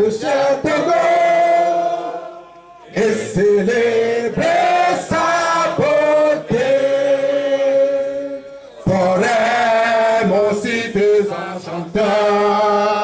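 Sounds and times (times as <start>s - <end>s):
crowd singing in unison: 0.0s - 13.0s.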